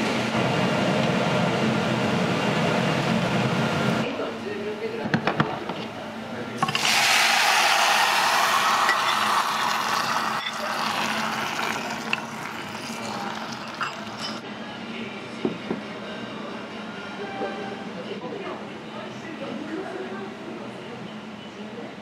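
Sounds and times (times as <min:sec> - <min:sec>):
sauce sizzling in a hot bowl: 0:06.6 - 0:14.2.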